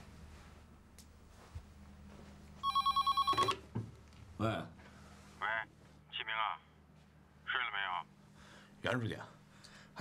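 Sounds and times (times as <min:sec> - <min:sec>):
telephone ringing electronic warble: 0:02.6 - 0:03.6.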